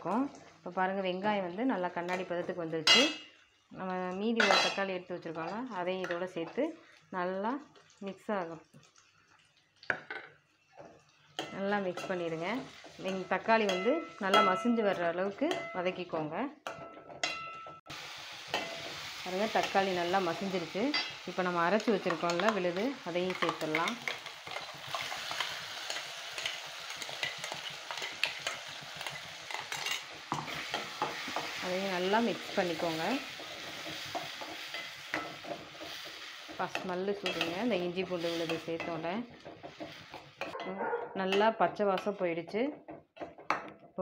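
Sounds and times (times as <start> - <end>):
vegetables sizzling in oil: 0.0 - 16.4, 17.8 - 40.6
ladle stirring in pan: 8.7 - 15.8, 18.4 - 40.7.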